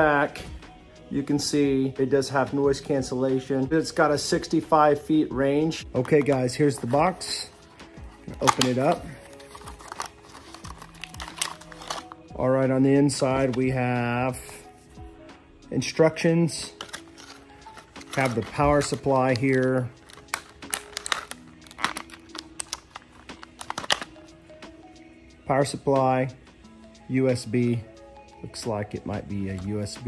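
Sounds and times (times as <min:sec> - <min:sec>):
faint background music: 0:00.0 - 0:30.0
plastic parts clicking and rattling: 0:08.3 - 0:12.1, 0:16.8 - 0:19.4, 0:20.0 - 0:24.1
cardboard box being opened: 0:09.3 - 0:12.0.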